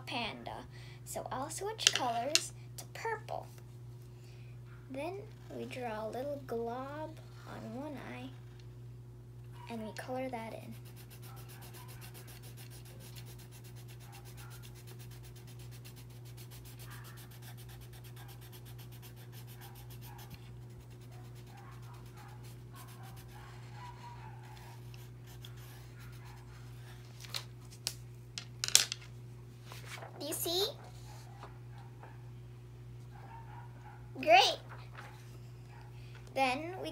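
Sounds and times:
steady low hum: 0:00.0 - 0:36.9
pencil scribbling on paper: 0:10.7 - 0:26.4.

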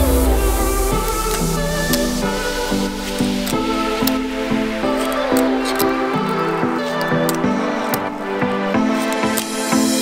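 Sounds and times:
background music melody: 0:00.0 - 0:10.0.

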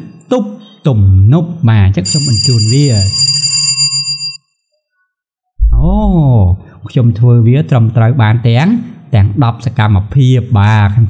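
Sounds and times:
electronic ringing tone: 0:02.0 - 0:04.5
man's voice: 0:05.6 - 0:11.0.

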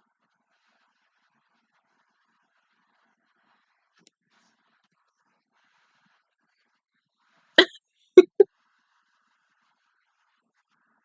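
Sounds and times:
woman's short wordless vocal sounds: 0:07.6 - 0:08.4.

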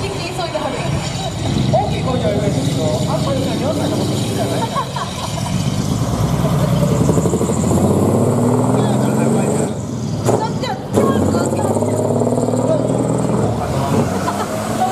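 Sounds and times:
diesel truck engine driving away: 0:00.0 - 0:14.9.

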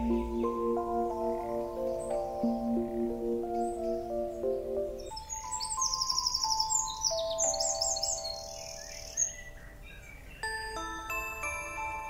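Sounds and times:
soft background music: 0:00.0 - 0:09.8, 0:10.4 - 0:12.0
songbird chirping: 0:00.0 - 0:12.0.

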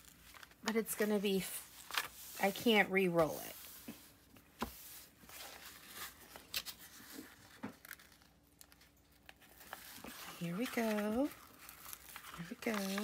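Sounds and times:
plastic film crinkling: 0:05.4 - 0:13.0.

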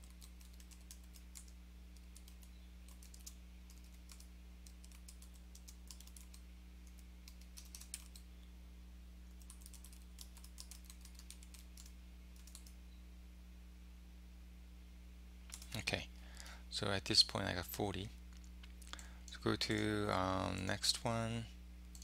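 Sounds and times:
keyboard typing: 0:00.0 - 0:08.2, 0:09.3 - 0:12.8, 0:15.5 - 0:15.8
low electrical hum: 0:00.0 - 0:22.0.

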